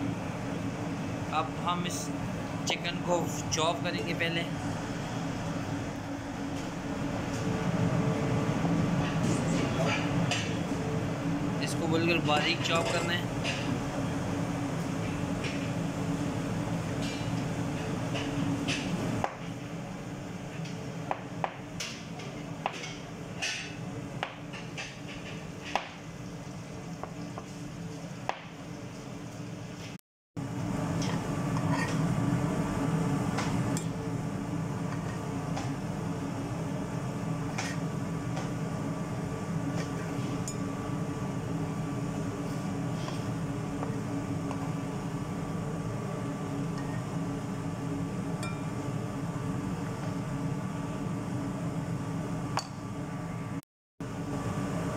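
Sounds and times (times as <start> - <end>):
low machine hum: 0.0 - 54.9.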